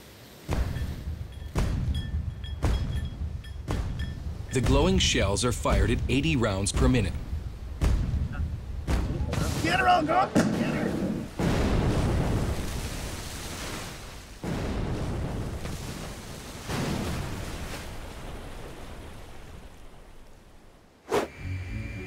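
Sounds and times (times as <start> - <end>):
naval gunfire booms: 0.5 - 19.9.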